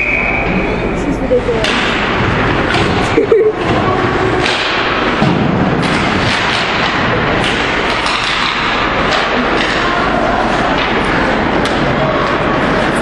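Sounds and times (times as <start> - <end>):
ice hockey game noise: 0.0 - 13.0.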